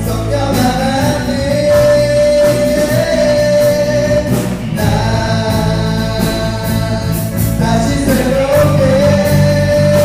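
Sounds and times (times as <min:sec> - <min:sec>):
worship band playing: 0:00.0 - 0:10.0.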